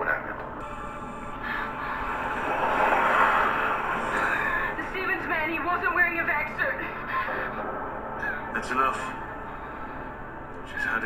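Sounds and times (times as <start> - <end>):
tense music: 0.0 - 11.0
woman speaking: 4.8 - 7.3.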